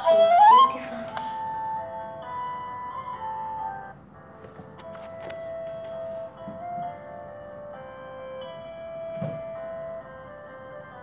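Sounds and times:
bell-like mallet music: 0.0 - 11.0.

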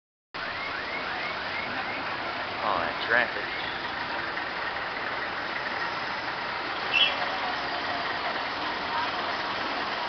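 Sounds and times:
traffic on a wet road: 0.4 - 10.0.

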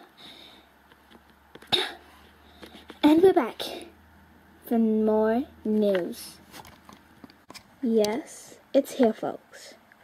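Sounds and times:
person coughing: 1.7 - 2.1.

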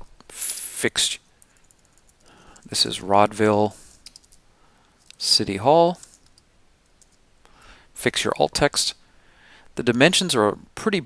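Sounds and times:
soft breath: 1.5 - 2.7, 3.8 - 5.1, 7.4 - 8.0, 9.0 - 9.8.

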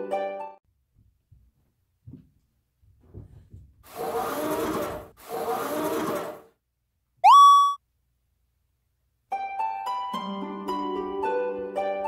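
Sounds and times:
rising whistle-like tone: 7.2 - 7.8.

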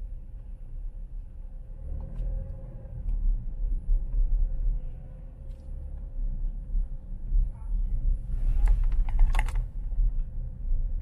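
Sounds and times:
car rolling low rumble: 0.0 - 11.0.

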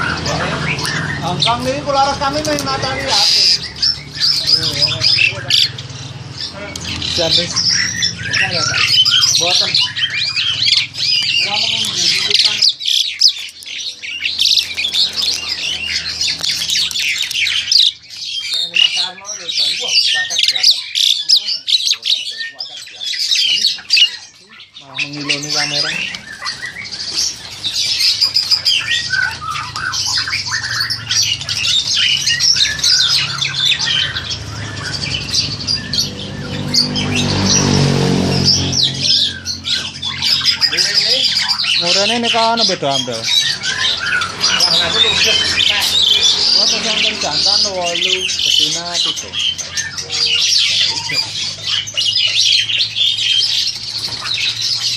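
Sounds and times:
starling calling: 0.0 - 54.9.

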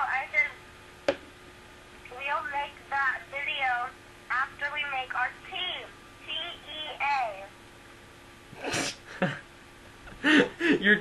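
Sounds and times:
faint steady hum: 0.0 - 11.0
high-pitched voice talking: 2.1 - 7.5.

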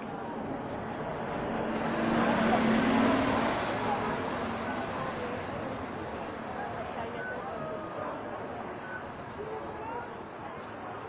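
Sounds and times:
bus engine driving past: 0.0 - 11.0
crowd chatter: 0.0 - 11.0.

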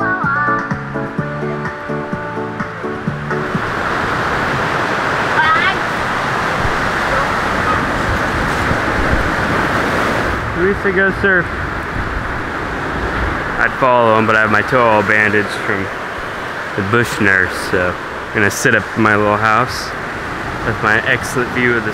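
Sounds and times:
background music: 0.0 - 4.2
ocean surf breaking: 0.0 - 21.9.

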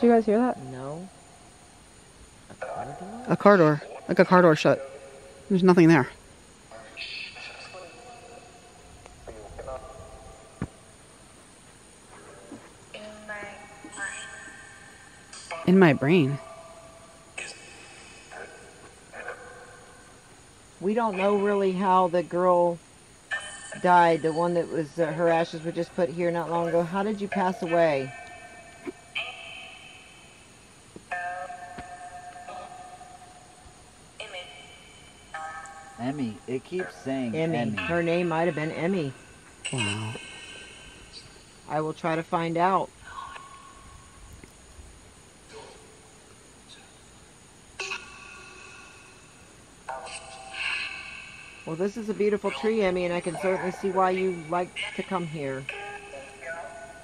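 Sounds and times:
faint voice: 39.7 - 40.2.

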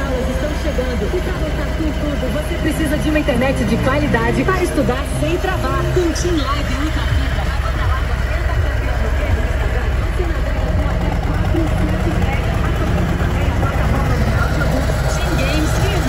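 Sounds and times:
faint voices: 0.0 - 16.0
motorcycle engine idling: 0.0 - 16.0.

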